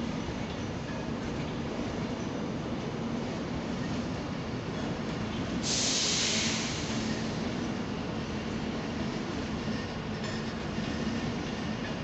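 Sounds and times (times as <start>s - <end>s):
loud high hiss: 5.6s - 7.1s.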